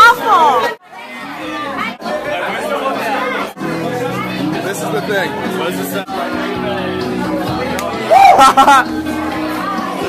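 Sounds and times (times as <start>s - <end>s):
crowd chatter: 0.0s - 10.0s
background music: 1.2s - 10.0s.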